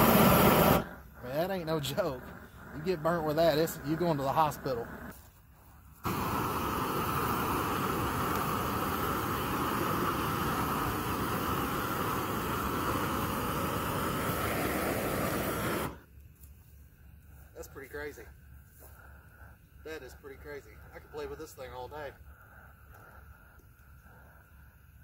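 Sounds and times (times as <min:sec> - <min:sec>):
propane torch rushing hiss: 0:00.0 - 0:25.0.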